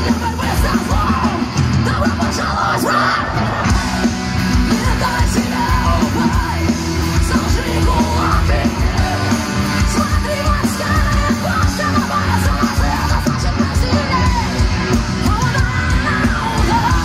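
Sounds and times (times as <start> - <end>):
drums: 0.0 - 17.0
electric guitars: 0.0 - 17.0
yelled vocals: 0.0 - 17.0.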